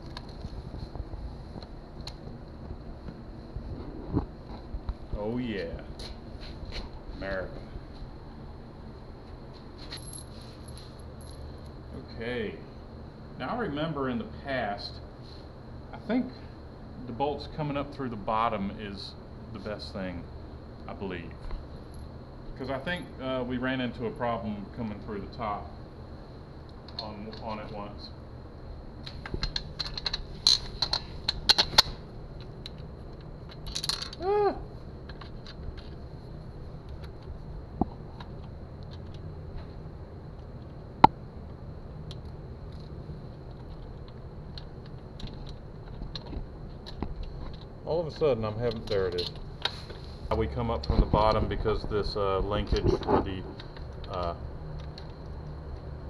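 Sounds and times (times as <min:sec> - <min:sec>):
steady low hum: 0:00.0 - 0:56.0
metallic clicks and jingles of tools: 0:09.8 - 0:11.4, 0:33.5 - 0:34.2
metal bolts clicking and clinking: 0:29.1 - 0:32.8, 0:33.5 - 0:34.2
short voice sound: 0:34.2 - 0:34.7.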